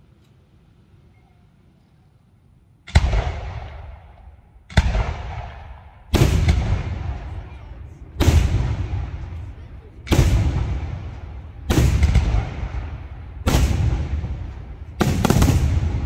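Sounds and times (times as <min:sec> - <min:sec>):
echoing rumble: 0:02.8 - 0:16.0
fireworks bursting: 0:02.9 - 0:16.0.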